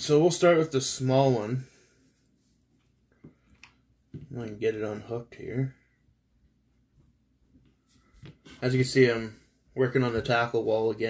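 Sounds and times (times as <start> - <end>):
faint plastic clicks and taps: 2.8 - 4.4.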